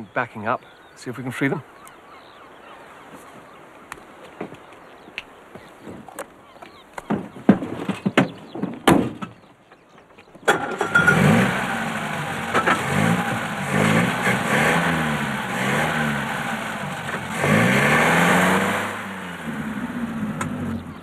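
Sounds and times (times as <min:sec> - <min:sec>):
car engine revving: 0:10.5 - 0:21.0.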